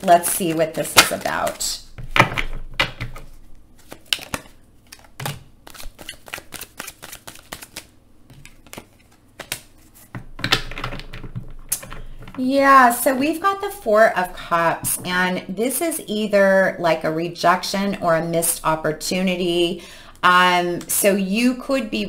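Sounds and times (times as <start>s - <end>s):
cards being shuffled: 0.0s - 12.4s.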